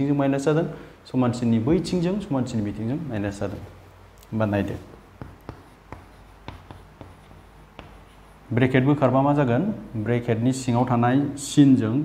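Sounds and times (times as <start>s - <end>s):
chalk scratching on blackboard: 4.5s - 8.5s
chalk tapping on board: 4.6s - 8.5s.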